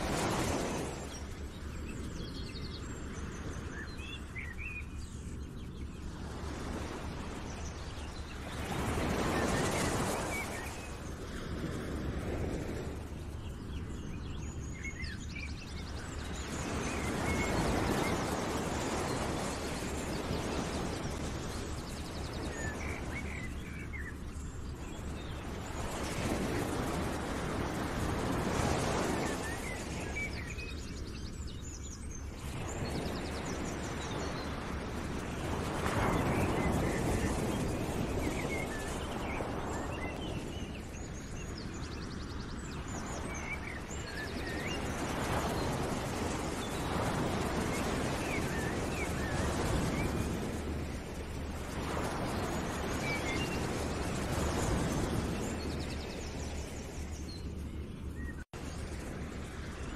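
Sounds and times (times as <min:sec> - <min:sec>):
birds chirping: 0:00.0 - 0:59.9
rushing surf-like noise: 0:00.0 - 0:59.9.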